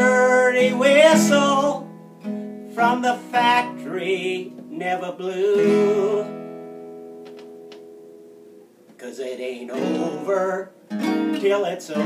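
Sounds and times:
acoustic guitar chord ringing: 0:00.0 - 0:08.6, 0:09.6 - 0:12.0
fingers clicking on strings: 0:07.2 - 0:07.9.

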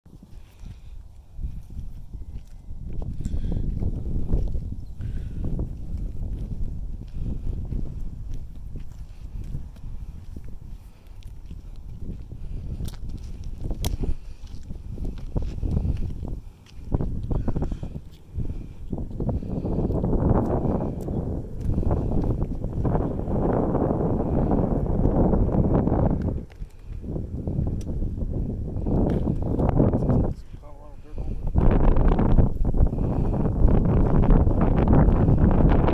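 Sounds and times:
wind buffeting microphone: 0:00.1 - 0:35.9.

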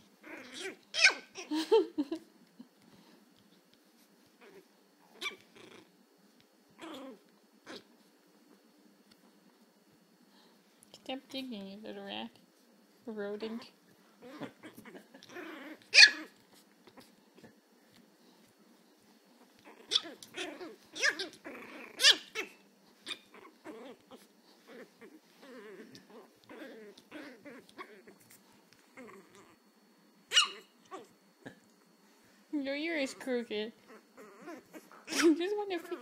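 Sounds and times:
puppy growling: 0:00.0 - 0:01.6, 0:04.4 - 0:06.0, 0:06.8 - 0:08.6, 0:13.4 - 0:18.0, 0:19.3 - 0:32.0, 0:32.9 - 0:36.0
puppy yapping: 0:00.3 - 0:01.5, 0:04.4 - 0:05.8, 0:14.2 - 0:16.4, 0:19.6 - 0:28.2, 0:30.3 - 0:31.1, 0:33.9 - 0:36.0.

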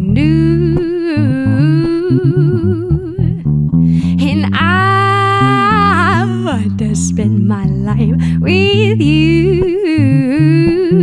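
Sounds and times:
woman singing long notes: 0:00.0 - 0:03.4, 0:04.0 - 0:11.0
electric bass guitar: 0:00.0 - 0:11.0.

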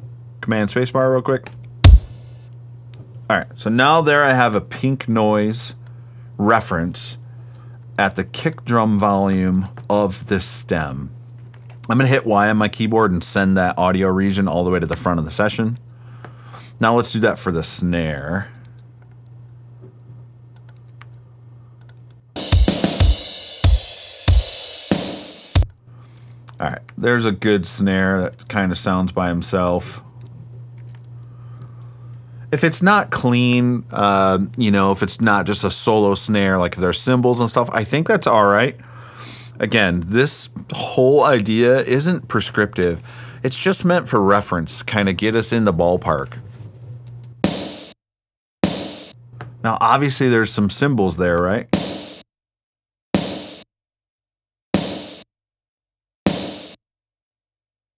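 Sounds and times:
low steady hum: 0:00.0 - 0:22.2, 0:25.6 - 0:47.4
snare drum hits: 0:01.9 - 0:02.2, 0:48.6 - 0:49.1, 0:51.8 - 0:52.2, 0:53.2 - 0:53.6, 0:54.8 - 0:55.2, 0:56.3 - 0:56.8.

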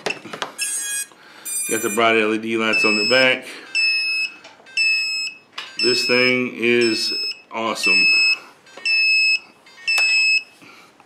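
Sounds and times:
high-pitched electronic beeps: 0:00.6 - 0:02.1, 0:02.7 - 0:10.5.

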